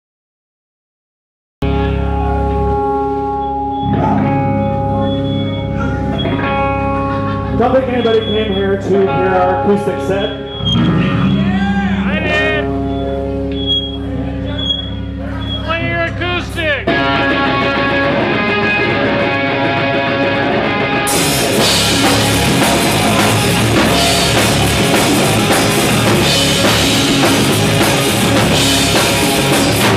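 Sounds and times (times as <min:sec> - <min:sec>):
sustained bass notes: 0:01.6 - 0:29.9
sustained electric guitar notes: 0:01.6 - 0:29.9
drums with cymbals: 0:21.1 - 0:29.9.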